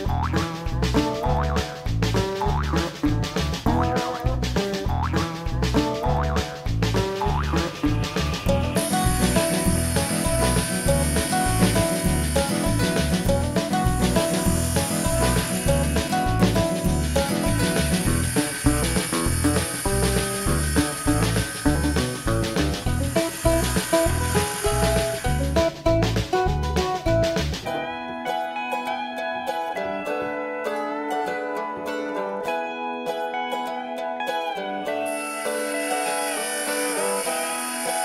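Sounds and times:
background music with steady beat: 0.0 - 29.8
table saw cutting wood: 7.1 - 26.0, 35.0 - 38.0.

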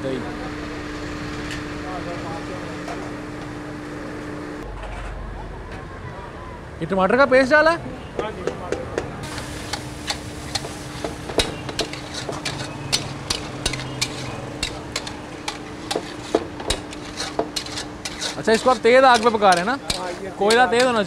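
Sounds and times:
meat sizzling in a pan: 9.2 - 20.8
metal spatula knocking against pan: 10.6 - 17.7, 18.6 - 21.0.

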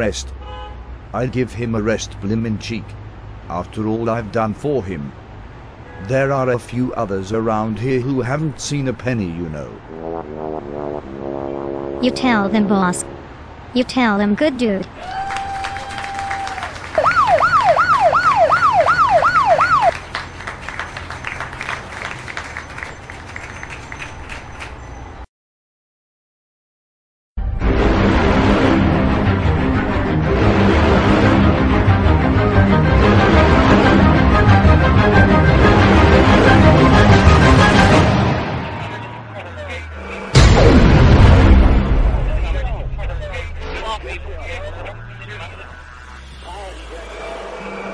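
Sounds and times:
city background hiss: 0.0 - 17.0
emergency vehicle siren: 15.0 - 23.5, 43.6 - 47.9
music: 27.4 - 38.7
loud boom-like impact: 40.3 - 46.4.

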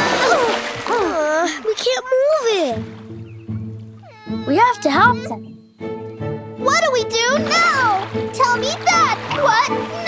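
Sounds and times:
soft sustained background music: 0.0 - 10.0
cartoon character whiny cry: 4.0 - 5.4.

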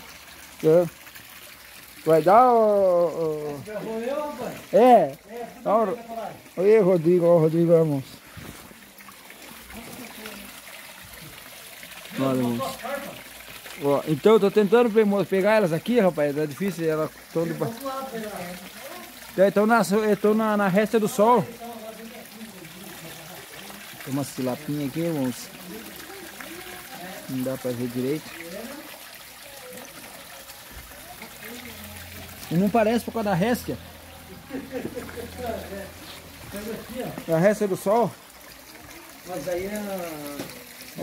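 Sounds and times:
water trickling into pond: 0.0 - 41.0.

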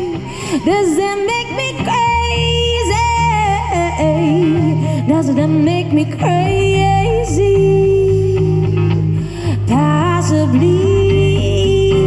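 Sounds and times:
woman singing: 0.0 - 12.0.

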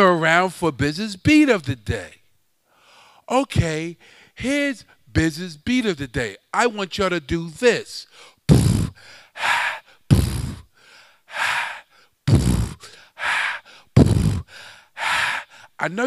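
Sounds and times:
man beatboxing: 8.5 - 9.0, 10.1 - 10.6, 12.3 - 12.9, 14.0 - 14.5.

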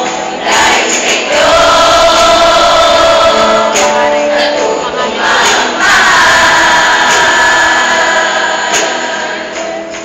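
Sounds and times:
choir singing long chord: 0.0 - 9.8.

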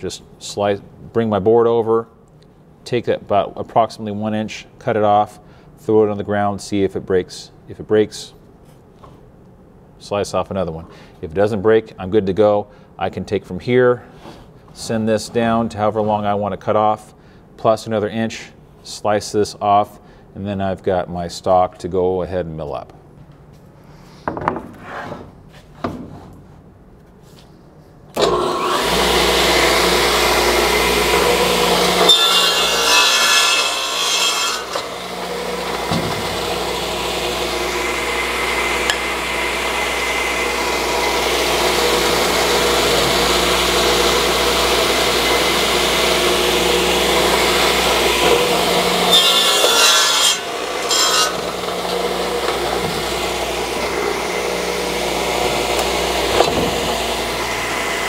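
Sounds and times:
saw blade cutting wood: 28.2 - 58.0
saw motor humming: 28.2 - 58.0.

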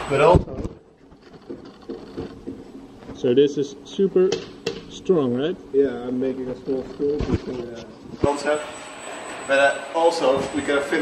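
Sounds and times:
extrusion machine running: 0.0 - 0.6, 5.4 - 11.0.

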